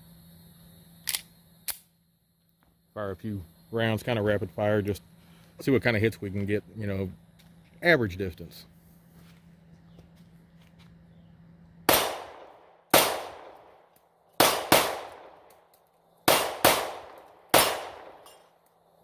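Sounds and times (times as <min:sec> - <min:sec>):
pistol shots echoing: 0:11.9 - 0:13.8, 0:14.4 - 0:15.5, 0:16.2 - 0:18.4.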